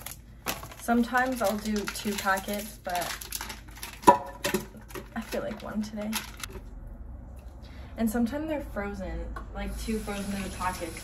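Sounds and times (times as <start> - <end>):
plastic packet crinkling: 0.0 - 6.7.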